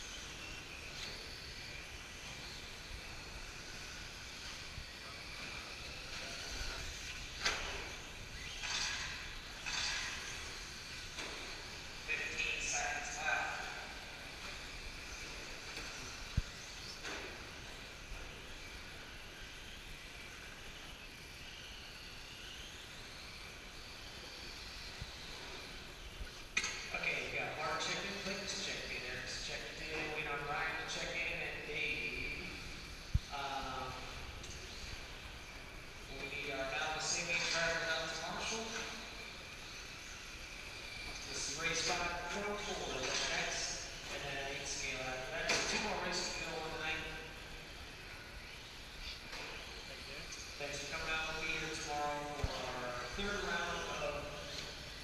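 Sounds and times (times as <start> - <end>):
electric rc trucks running: 0.0 - 55.0
people talking: 12.1 - 14.0, 26.9 - 32.6, 33.3 - 34.2, 36.1 - 39.1, 41.3 - 47.3, 49.9 - 54.6.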